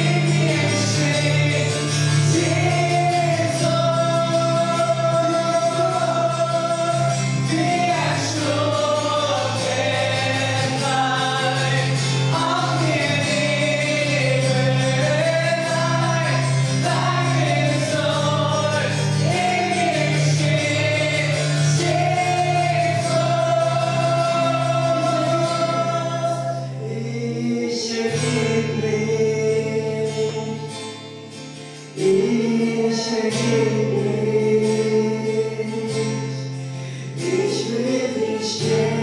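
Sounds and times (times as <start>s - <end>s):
voices singing along: 0.0s - 30.7s, 32.0s - 36.1s, 37.1s - 39.0s
man singing: 0.0s - 31.0s, 31.8s - 39.0s
acoustic guitar: 0.0s - 39.0s.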